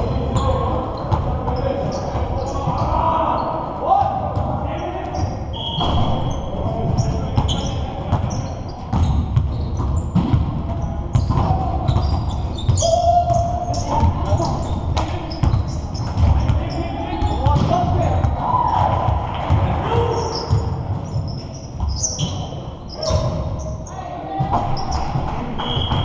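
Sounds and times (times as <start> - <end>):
sneakers squeaking: 0.0 - 26.0
players shouting: 0.2 - 8.4, 11.2 - 15.4, 16.2 - 20.7.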